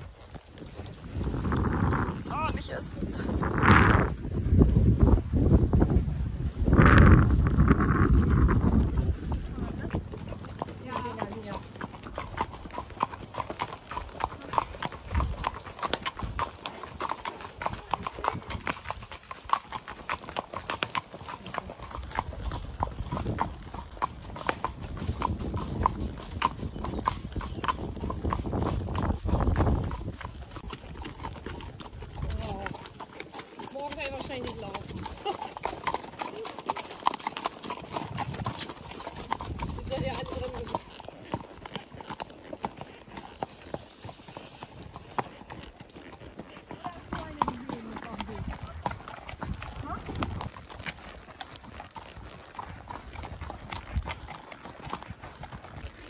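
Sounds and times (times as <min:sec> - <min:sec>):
hooves clip-clopping on paved road: 0:00.0 - 0:56.0.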